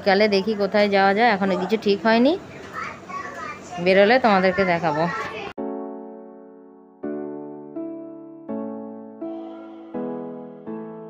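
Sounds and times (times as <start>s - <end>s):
held electric piano chord: 5.6s - 11.0s.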